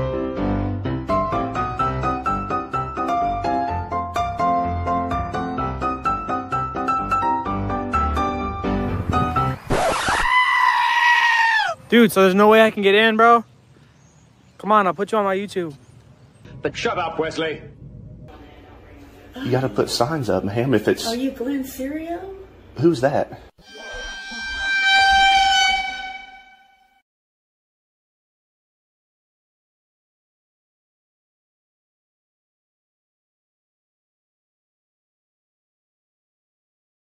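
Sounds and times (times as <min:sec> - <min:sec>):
piano music: 0:00.0 - 0:09.6, 0:23.6 - 0:27.0
high-pitched held cry: 0:23.6 - 0:26.8
horn-like tone: 0:23.6 - 0:27.0.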